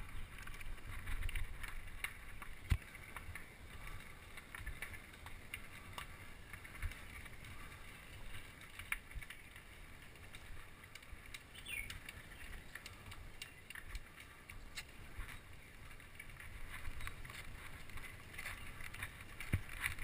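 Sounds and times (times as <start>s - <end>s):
bike clicks and rattles: 0.0s - 20.0s
bike tyres on rough concrete: 0.0s - 20.0s.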